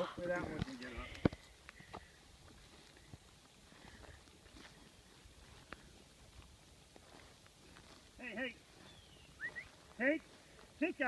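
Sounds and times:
footsteps in grass: 0.0s - 11.0s.

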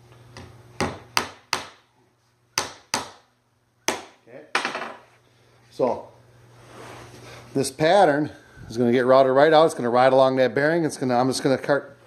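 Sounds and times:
hammer striking nails into plywood: 0.8s - 1.8s, 2.6s - 3.2s.

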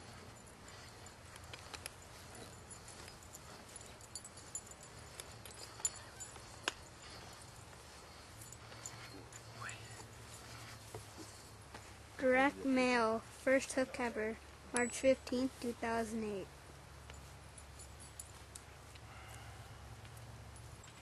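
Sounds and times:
horse harness clicks and knocks: 0.0s - 11.8s, 17.0s - 21.0s
low steady hum: 0.0s - 21.0s.

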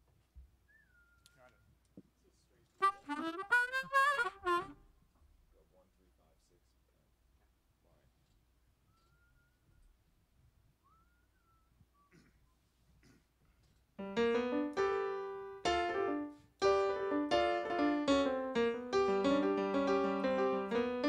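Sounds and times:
keyboard piano chords: 14.0s - 21.0s.

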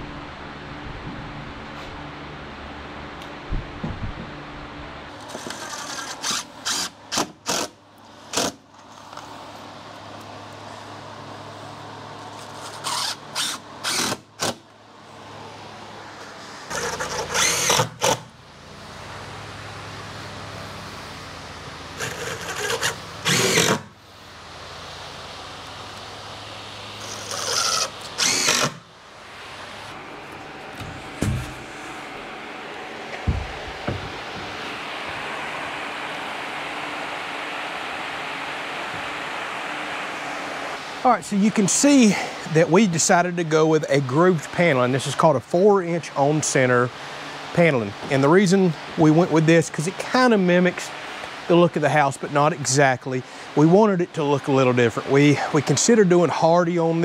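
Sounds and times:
cordless drill driving screws: 5.3s - 8.6s, 12.7s - 14.6s, 16.7s - 18.3s, 22.0s - 23.9s, 27.0s - 28.8s
knocks: 33.2s - 34.6s.

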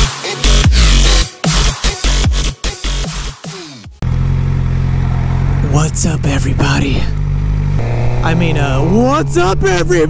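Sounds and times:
electronic dance music: 0.0s - 3.9s
motorcycle engine idling: 4.0s - 9.8s.

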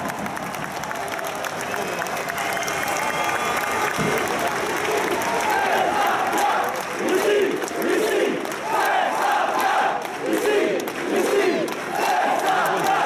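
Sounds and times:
stadium crowd cheering and shouting: 0.0s - 13.0s.

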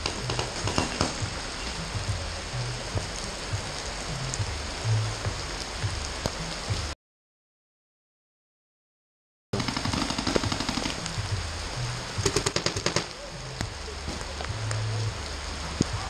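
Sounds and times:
steady rain: 0.0s - 7.0s, 9.6s - 16.0s
paintball markers firing: 9.6s - 11.0s, 12.2s - 13.2s.

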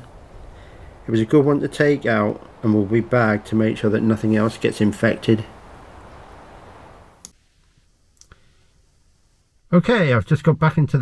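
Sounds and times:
faint sharp clicks: 7.2s - 8.4s.

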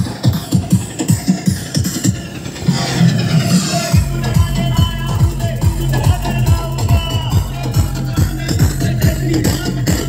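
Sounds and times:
electronic music: 0.0s - 10.0s
rising sweep: 2.0s - 5.2s.

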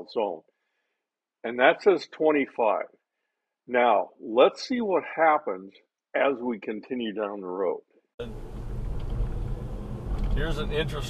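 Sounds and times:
road and tyre rumble in car: 8.2s - 11.0s.

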